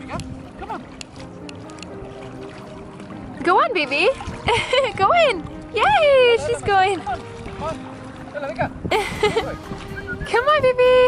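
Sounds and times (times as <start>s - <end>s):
music with soft held notes: 0.0s - 11.0s.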